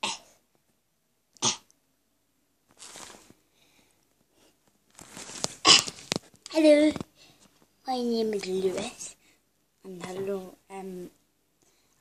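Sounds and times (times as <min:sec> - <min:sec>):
boy coughing: 0:05.6 - 0:05.9.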